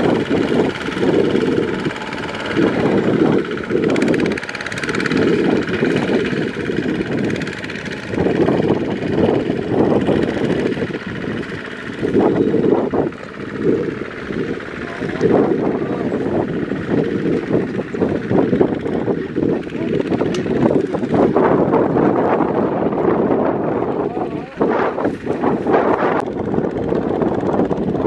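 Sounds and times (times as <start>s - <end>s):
diesel tiller engine under load: 0.0s - 28.0s.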